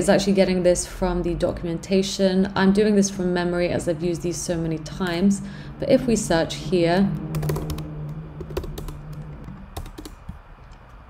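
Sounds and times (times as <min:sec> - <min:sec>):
computer keyboard typing: 0:07.3 - 0:10.4.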